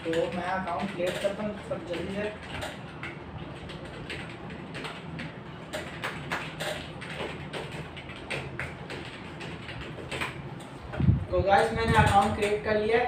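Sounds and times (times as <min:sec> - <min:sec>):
computer keyboard typing: 0:00.0 - 0:10.8, 0:11.5 - 0:13.0.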